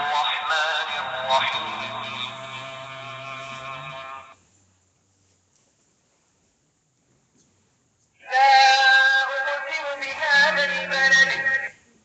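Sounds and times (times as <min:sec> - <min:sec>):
man chanting recitation: 0:00.0 - 0:04.4, 0:08.2 - 0:11.8.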